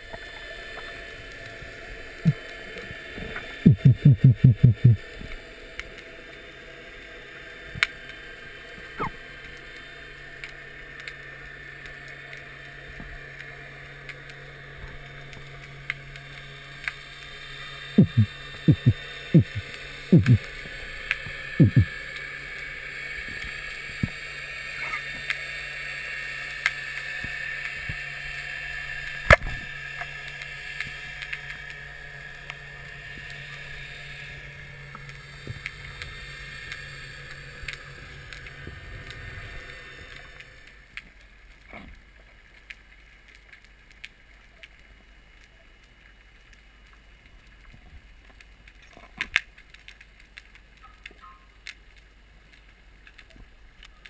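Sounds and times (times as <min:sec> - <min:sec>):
underwater hiss and hum: 0:00.0 - 0:54.0
sharp underwater clicks: 0:03.2 - 0:05.0, 0:18.0 - 0:22.3.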